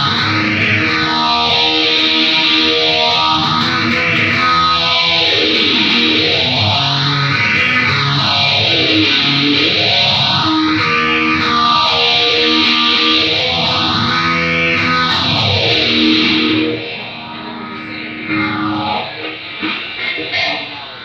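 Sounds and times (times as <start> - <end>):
distorted electric guitar with sweep: 0.0 - 21.0.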